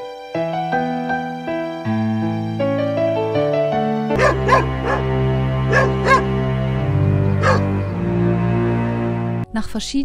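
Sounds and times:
background music: 0:00.0 - 0:10.0
dog barking: 0:04.2 - 0:05.1, 0:05.7 - 0:06.3, 0:07.4 - 0:07.7.

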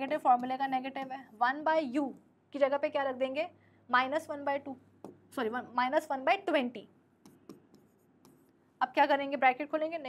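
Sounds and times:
pen tapping on digital board: 0:00.0 - 0:01.2, 0:05.0 - 0:05.3, 0:07.2 - 0:08.6
woman speaking: 0:00.0 - 0:07.0, 0:08.8 - 0:10.0.

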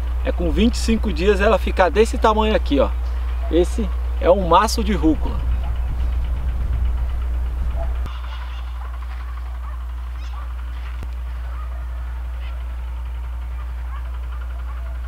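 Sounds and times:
wind on microphone: 0:05.4 - 0:08.1
faint bird chirps: 0:08.2 - 0:11.7.

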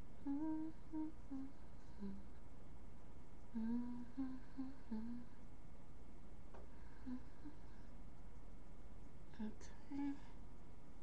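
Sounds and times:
woman humming a tune: 0:00.2 - 0:02.3, 0:03.5 - 0:05.4, 0:07.0 - 0:07.7, 0:09.4 - 0:10.3.

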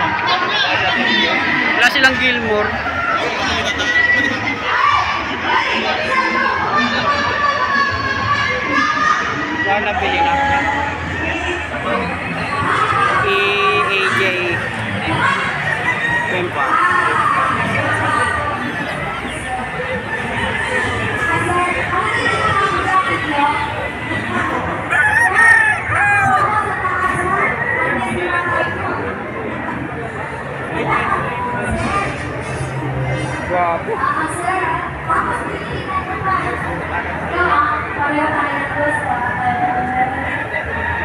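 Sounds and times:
crowd talking and calling out: 0:00.0 - 0:41.0
rooster crowing: 0:24.9 - 0:26.5.

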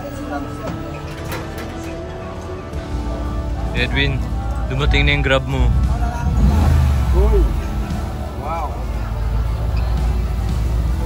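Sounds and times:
background music: 0:00.0 - 0:11.0
vehicle engine rumble: 0:00.0 - 0:11.0
voices: 0:00.0 - 0:11.0.

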